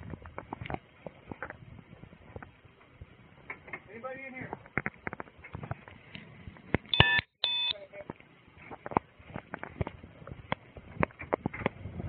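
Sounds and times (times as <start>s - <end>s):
short electronic beeps: 6.9s - 7.9s.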